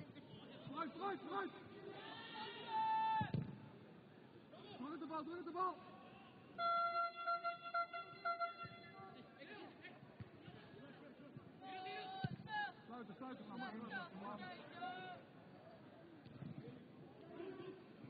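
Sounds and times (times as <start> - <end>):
people shouting: 1.9 - 3.3.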